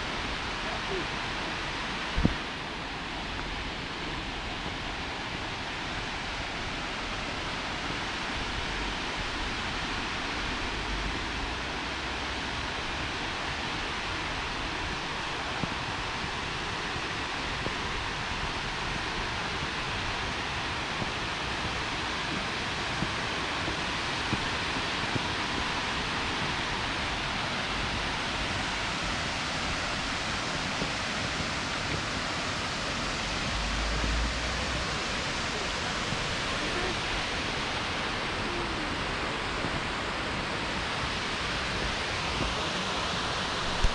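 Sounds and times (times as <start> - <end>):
waterfall rushing: 0.0 - 43.9
wind rumble on microphone: 0.0 - 43.9.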